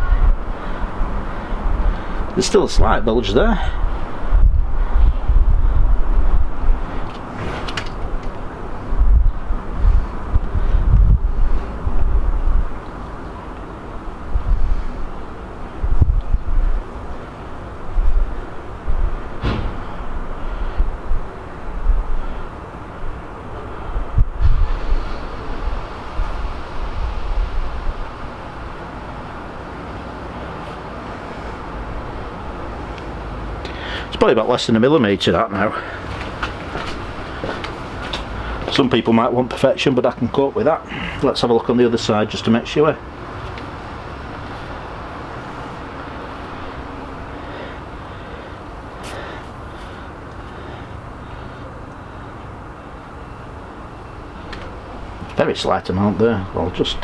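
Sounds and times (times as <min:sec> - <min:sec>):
wind buffeting microphone: 0:00.0 - 0:33.6.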